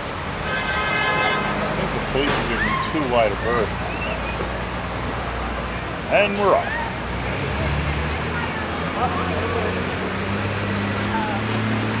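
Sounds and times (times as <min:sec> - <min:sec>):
town traffic engine hum: 0:00.0 - 0:12.0
distant people talking: 0:01.6 - 0:04.6, 0:05.2 - 0:12.0.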